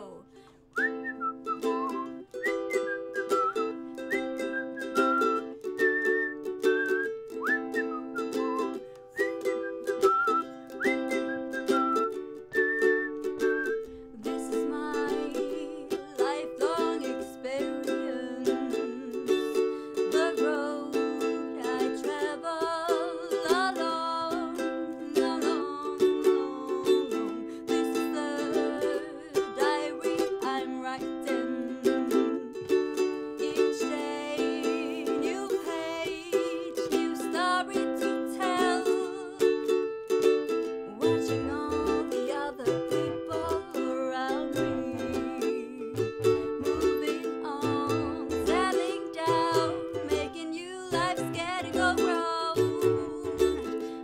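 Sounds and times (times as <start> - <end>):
woman singing: 0.0 - 2.2, 12.6 - 54.0
ukulele strumming: 0.0 - 54.0
woman whistling: 0.7 - 13.9.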